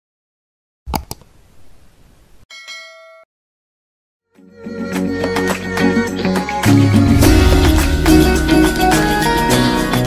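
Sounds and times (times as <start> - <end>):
bright bell ding: 2.5 - 3.3.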